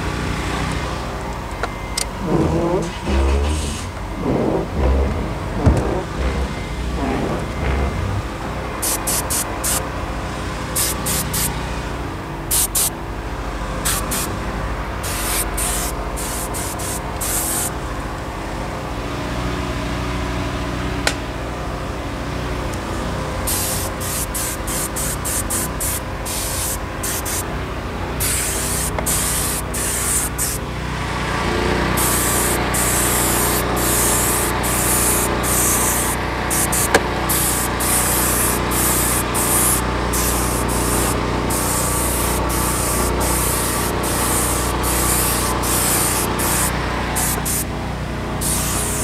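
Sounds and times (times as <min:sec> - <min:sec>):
low hum: 0:01.9 - 0:08.9
air spray gun hissing bursts: 0:08.8 - 0:09.8, 0:10.8 - 0:11.6, 0:12.5 - 0:12.9, 0:13.8 - 0:14.4, 0:15.0 - 0:17.8, 0:23.5 - 0:27.5, 0:28.2 - 0:30.6, 0:32.0 - 0:47.7, 0:48.4 - 0:49.0.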